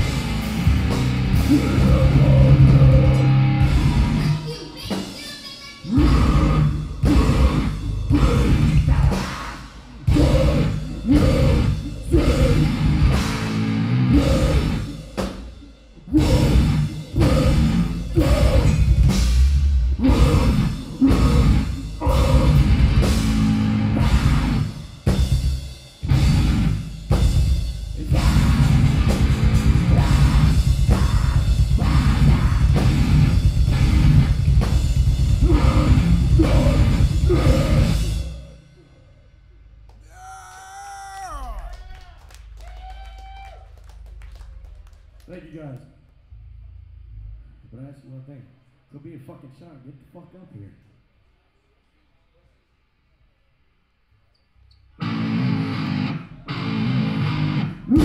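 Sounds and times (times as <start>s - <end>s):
heavy metal band playing: 0.0s - 5.2s, 5.9s - 15.3s, 16.1s - 38.4s, 55.0s - 58.0s.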